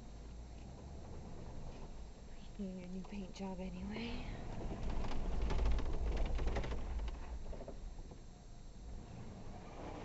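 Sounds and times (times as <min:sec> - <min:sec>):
vehicle low rumble: 0:00.0 - 0:10.0.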